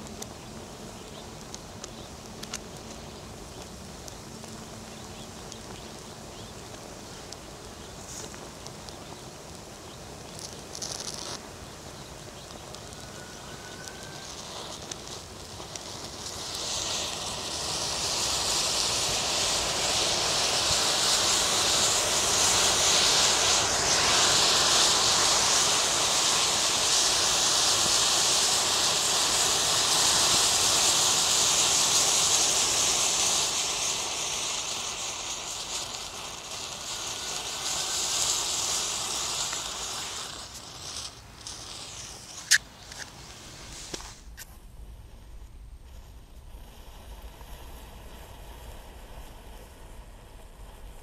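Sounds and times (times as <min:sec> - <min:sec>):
matches flaring with loud hiss: 0:00.0 - 0:51.0.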